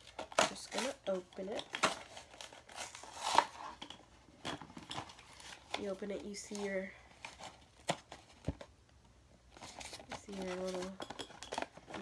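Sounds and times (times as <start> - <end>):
cardboard ripping: 1.8 - 3.7.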